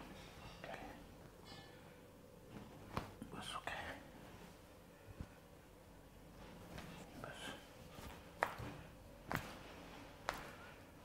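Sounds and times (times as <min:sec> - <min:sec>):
breathy whispering: 0:00.4 - 0:01.2, 0:03.2 - 0:04.2, 0:07.0 - 0:07.8.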